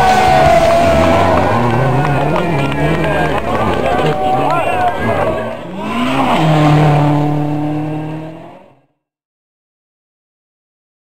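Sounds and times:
rally car engine passing: 0.0 - 8.9.

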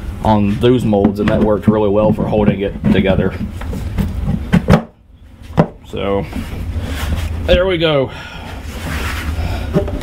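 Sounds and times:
plastic parts knocking together: 1.0 - 5.0, 9.7 - 10.0.

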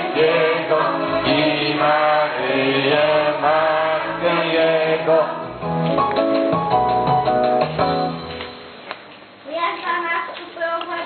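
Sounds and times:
group singing a carol: 0.0 - 5.7.

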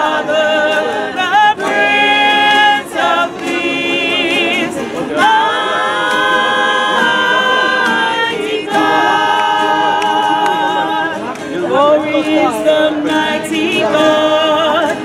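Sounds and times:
gospel choir singing a carol: 0.0 - 15.0.

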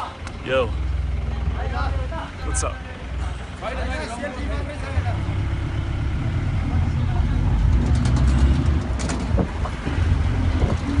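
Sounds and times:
road noise: 0.0 - 11.0
truck engine under load: 0.0 - 11.0.

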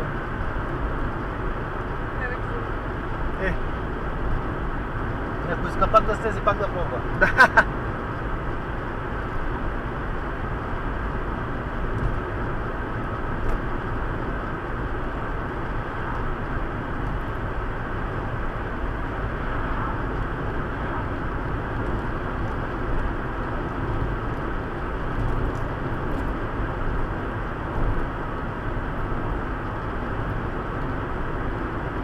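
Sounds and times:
car engine cruising: 0.0 - 32.0.

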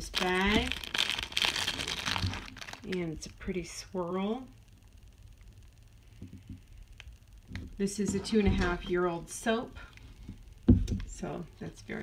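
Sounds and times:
plastic bag crinkling: 0.0 - 3.2.

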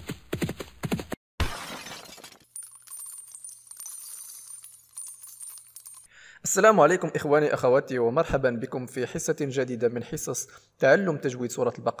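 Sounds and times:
galloping hoofbeats: 0.0 - 1.2.

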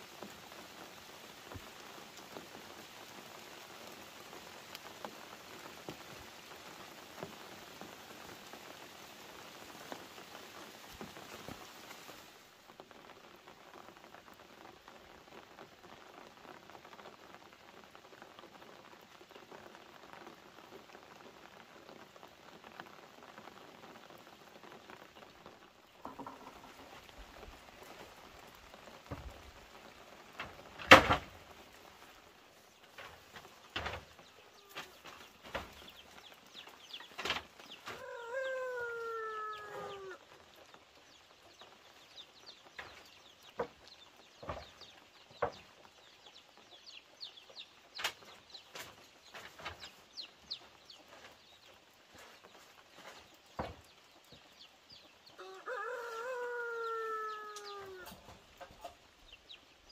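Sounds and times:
light rain patter: 0.0 - 59.9.

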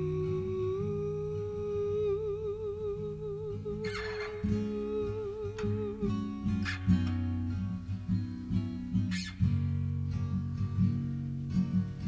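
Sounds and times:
woman humming: 0.0 - 6.7
fingerpicked acoustic guitar: 0.0 - 12.0.

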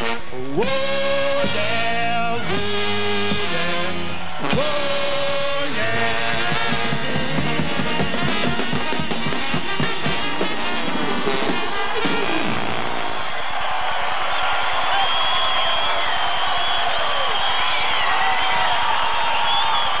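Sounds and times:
brass band playing: 0.0 - 14.0
audience cheering and whistling: 0.6 - 20.0.

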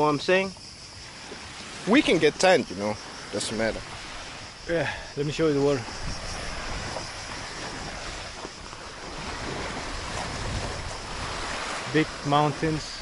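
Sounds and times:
wind buffeting microphone: 0.6 - 13.0
waves washing onto pebbles: 1.0 - 13.0.

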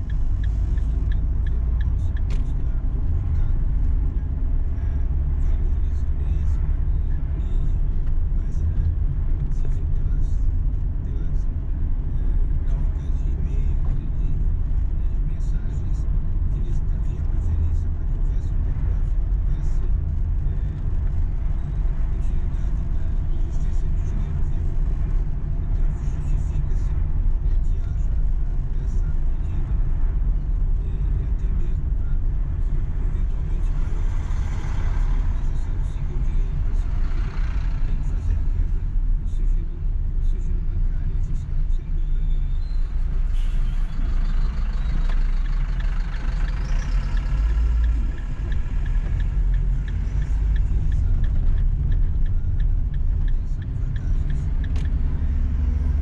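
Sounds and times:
car engine and road noise: 0.0 - 56.0.

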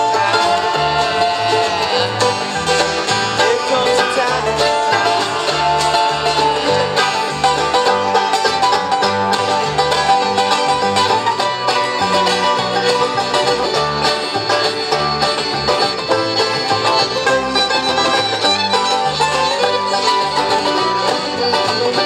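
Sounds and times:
acoustic guitar: 0.0 - 22.0
banjo: 0.0 - 22.0
mandolin: 0.0 - 22.0
upright bass walking line: 0.0 - 22.0.

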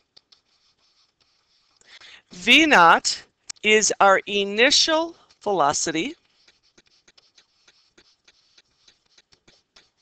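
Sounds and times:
stylus tapping and scratching: 0.0 - 2.8, 3.5 - 10.0.

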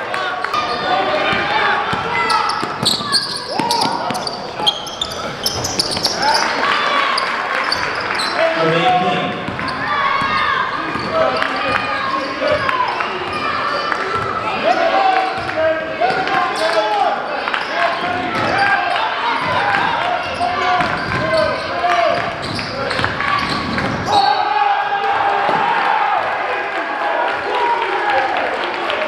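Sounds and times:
echoing hubbub of voices: 0.0 - 29.0.

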